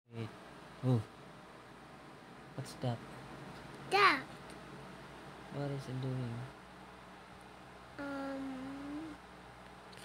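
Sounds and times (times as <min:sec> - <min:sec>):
person humming and saying oh: 0:08.0 - 0:09.2.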